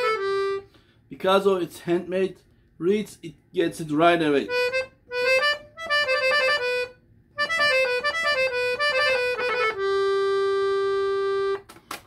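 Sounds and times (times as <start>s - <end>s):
piano accordion playing: 0.0s - 0.8s, 4.4s - 11.7s.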